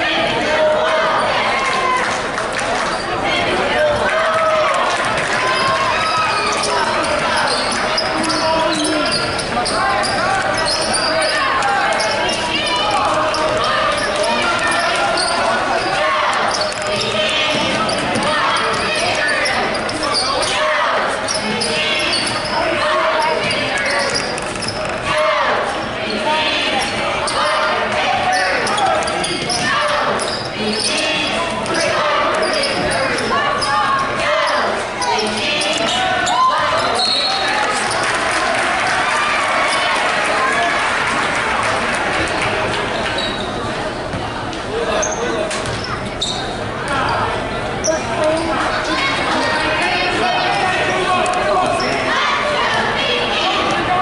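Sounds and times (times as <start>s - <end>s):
crowd and player voices: 0.0s - 54.0s.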